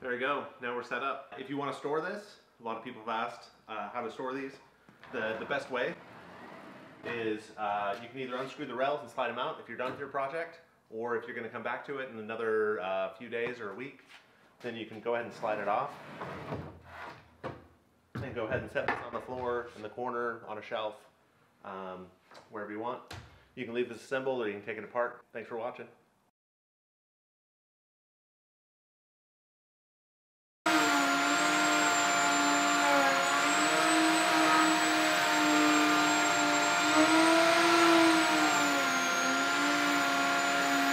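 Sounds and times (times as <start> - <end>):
router whining cutting wood: 5.0 - 7.2, 30.7 - 40.9.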